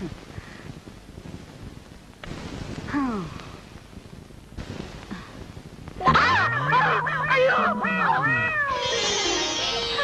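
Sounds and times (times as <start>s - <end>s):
woman wailing: 6.1s - 8.8s.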